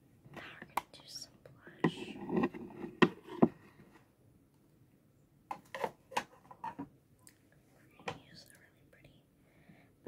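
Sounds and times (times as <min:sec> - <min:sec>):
girl whispering: 0:00.4 - 0:02.2, 0:07.8 - 0:09.3.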